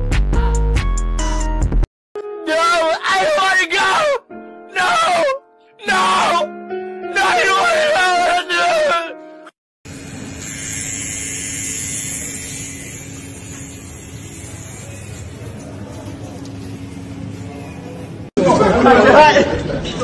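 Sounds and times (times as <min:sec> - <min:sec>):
faint indistinct voices: 0:14.3 - 0:18.9.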